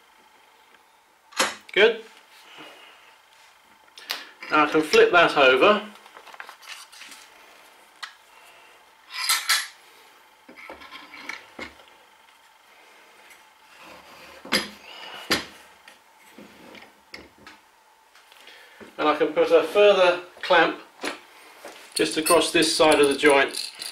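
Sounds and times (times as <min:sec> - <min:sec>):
metal clamps clinking and knocking: 0:22.0 - 0:23.9.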